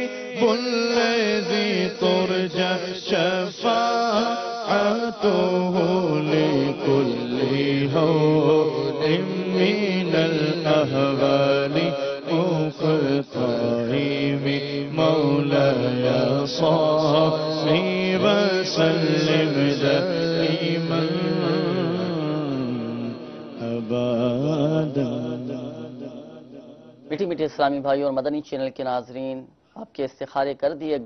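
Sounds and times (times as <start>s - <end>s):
man chanting into a microphone: 0.0s - 31.0s.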